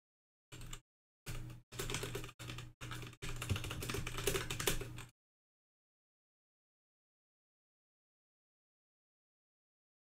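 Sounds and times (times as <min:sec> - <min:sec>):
computer keyboard typing: 0:00.5 - 0:05.1.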